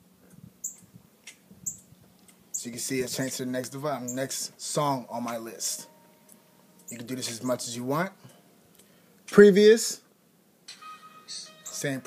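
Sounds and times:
short high-pitched chirps: 10.7 - 11.9.

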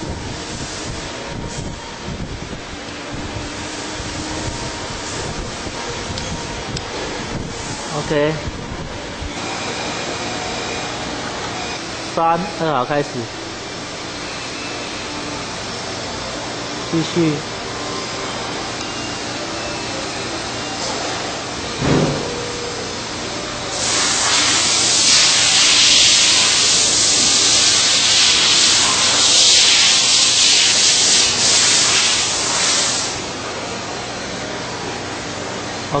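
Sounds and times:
high hiss of wheel grinding: 22.9 - 33.9.

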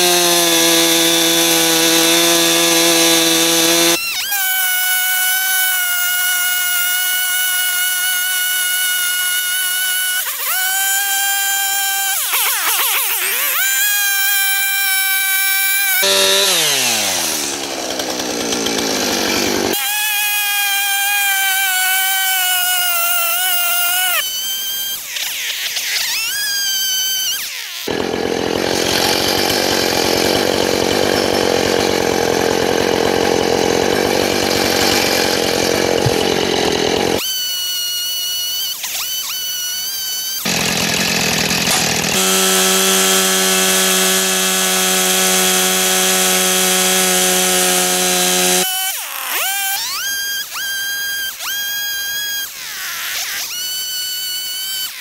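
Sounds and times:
chainsaw revving: 0.0 - 5.6, 6.6 - 24.1, 27.8 - 37.2, 40.4 - 52.5
chainsaw cutting wood: 0.0 - 55.0.

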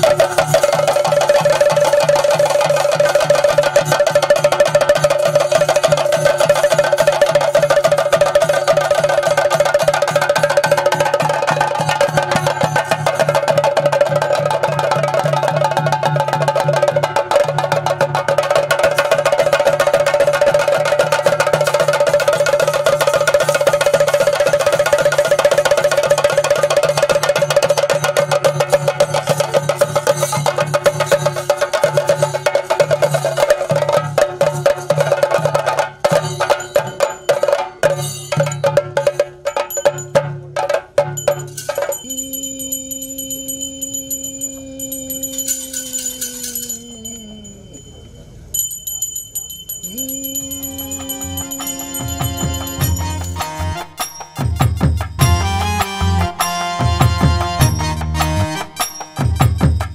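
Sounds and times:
drums beaten in fast roll: 0.0 - 42.0, 51.9 - 59.9
steady ringing tone: 41.2 - 55.3.

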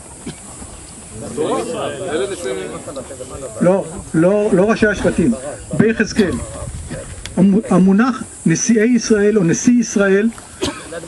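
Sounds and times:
steady hiss: 0.0 - 11.0
man talking into microphone: 1.6 - 6.8.

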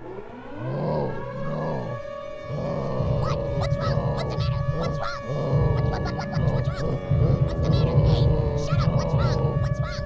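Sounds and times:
pulsing low drone: 0.0 - 10.0
sliding warbling tones: 0.0 - 10.0.

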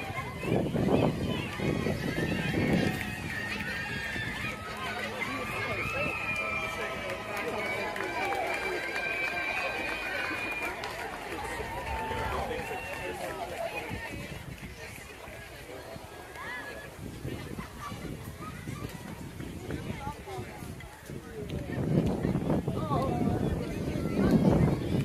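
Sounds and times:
crowd calling and chattering: 0.0 - 25.0.

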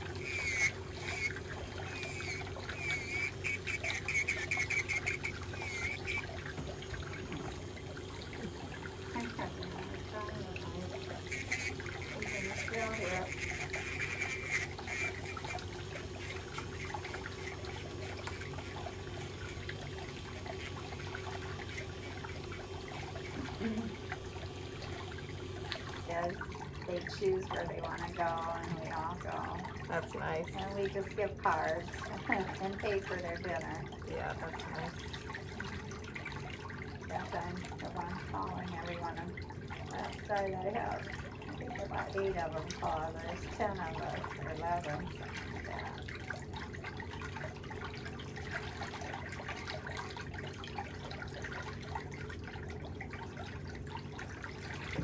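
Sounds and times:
electric nail drill humming: 0.0 - 6.2, 10.8 - 16.4.

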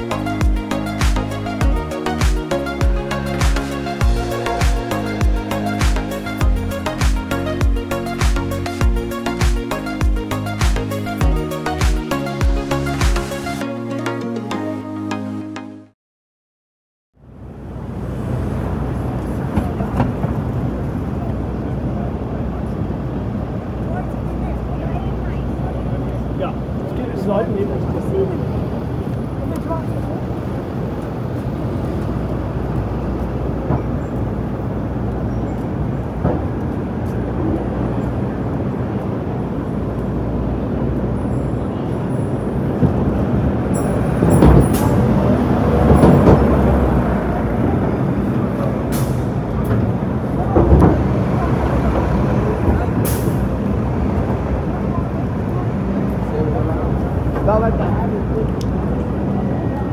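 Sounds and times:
traffic rumble: 0.0 - 14.1, 17.2 - 59.9
pedestrians' voices: 0.0 - 14.9, 17.3 - 59.9
bus passing with hisses: 17.4 - 59.9.

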